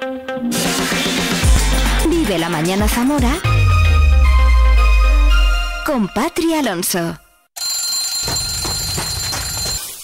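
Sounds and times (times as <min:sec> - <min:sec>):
alarm clock ringing: 0:07.6 - 0:10.0.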